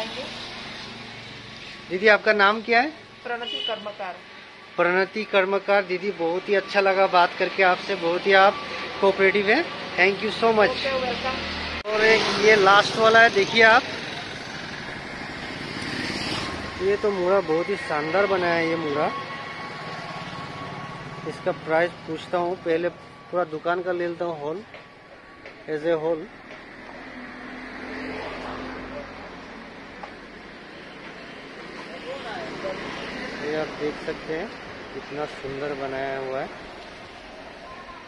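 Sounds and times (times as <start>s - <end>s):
vehicle passing on street: 0.0s - 38.0s.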